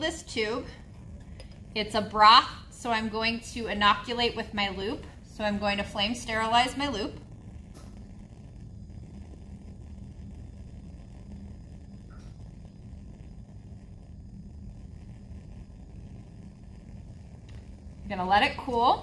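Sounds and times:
bunsen burner flame rumbling: 0:00.0 - 0:19.0.

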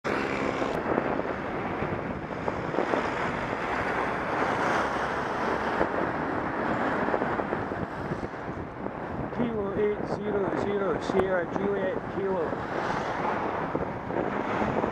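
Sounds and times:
road noise: 0:00.0 - 0:14.9
wind rushing over microphone: 0:00.1 - 0:14.9.

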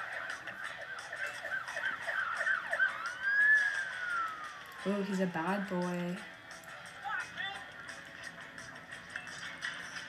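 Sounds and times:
police siren: 0:00.0 - 0:06.4.

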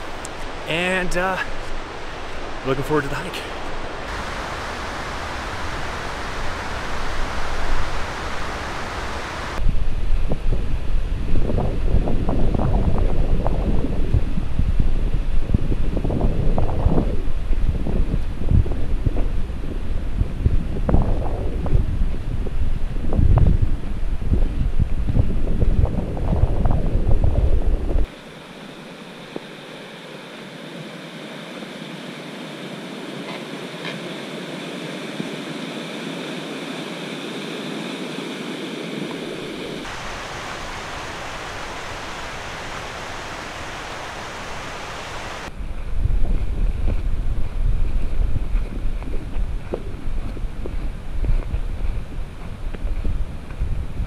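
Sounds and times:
rushing creek water: 0:00.0 - 0:09.6, 0:39.8 - 0:45.5
wind buffeting microphone: 0:03.5 - 0:28.1, 0:39.0 - 0:54.0.

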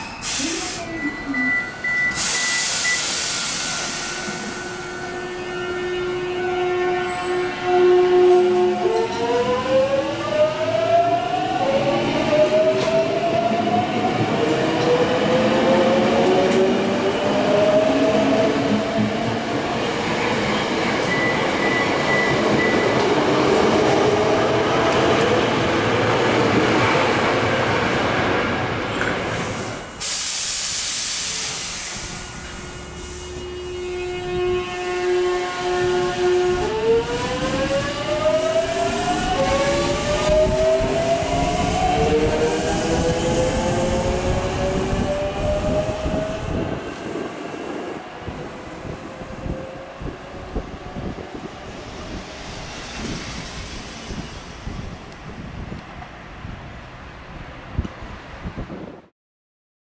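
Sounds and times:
rumble of passing train cars: 0:00.0 - 0:59.1.

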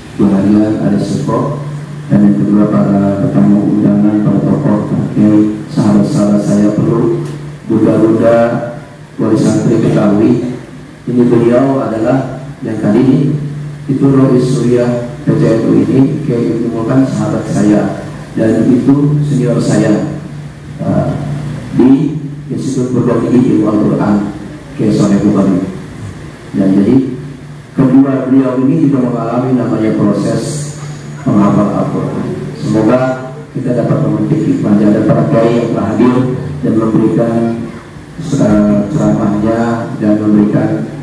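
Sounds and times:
man chanting into microphone: 0:00.0 - 0:25.8, 0:26.5 - 0:41.0.

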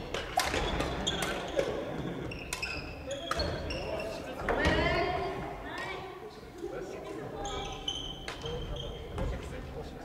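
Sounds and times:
rackets hitting shuttlecocks: 0:00.0 - 0:01.8
voices echoing in a hall: 0:00.0 - 0:10.0.

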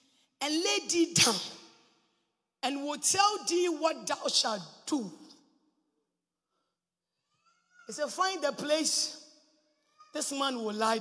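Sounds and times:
person speaking: 0:07.9 - 0:09.3, 0:10.1 - 0:11.0.

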